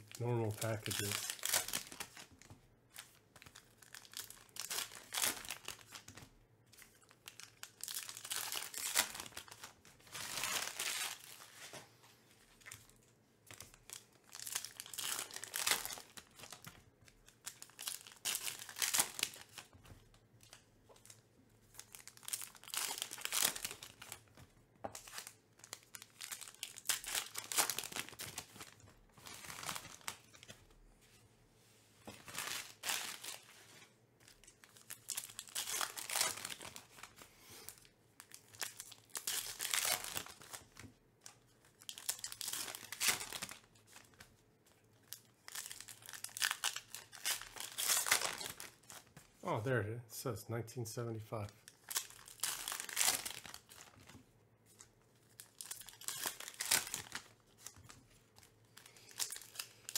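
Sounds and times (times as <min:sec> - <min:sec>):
card pack wrappers tearing and crinkling: 0:00.0 - 0:11.7, 0:13.5 - 0:19.8, 0:20.4 - 0:24.4, 0:25.0 - 0:30.6, 0:32.2 - 0:44.3, 0:45.0 - 0:49.2, 0:51.7 - 0:54.2, 0:54.8 - 0:59.9.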